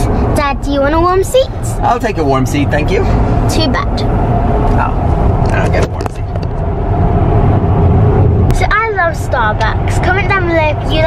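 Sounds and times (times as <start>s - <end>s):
road and tyre noise in car: 0.0s - 11.0s.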